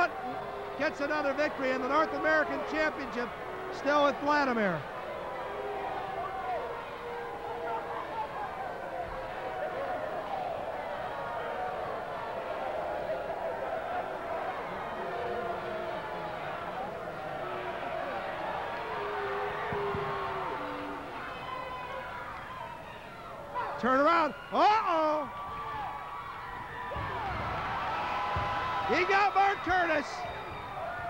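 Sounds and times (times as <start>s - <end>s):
crowd shouting: 0.0s - 31.0s.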